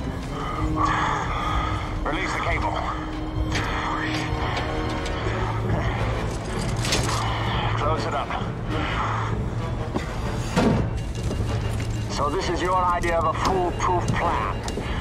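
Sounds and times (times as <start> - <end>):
film music score: 0.0 - 15.0.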